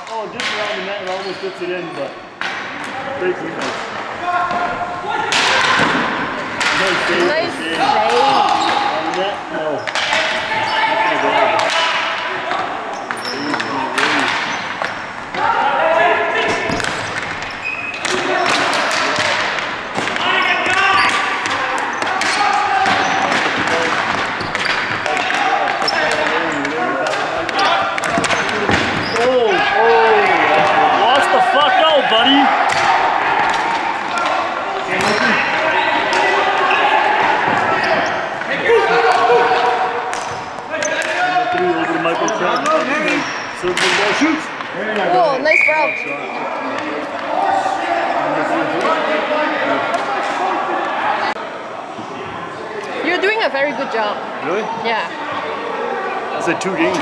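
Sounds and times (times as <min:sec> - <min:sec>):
hockey sticks clacking: 0:00.0 - 0:01.4, 0:02.4 - 0:15.6, 0:16.4 - 0:29.8, 0:30.6 - 0:45.2
players shouting: 0:00.0 - 0:57.0.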